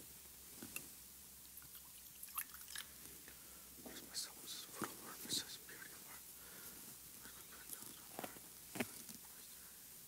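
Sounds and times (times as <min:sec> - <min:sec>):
man whispering: 0:03.8 - 0:06.4, 0:07.1 - 0:08.5
cloth rustling: 0:06.6 - 0:09.4.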